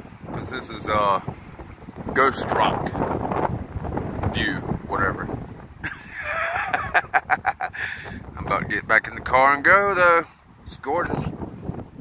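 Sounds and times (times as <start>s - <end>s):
man laughing: 5.8s - 8.2s.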